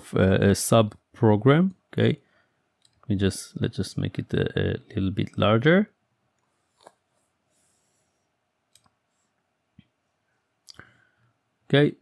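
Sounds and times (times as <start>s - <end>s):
computer mouse clicks: 2.8s - 3.1s, 8.7s - 9.0s.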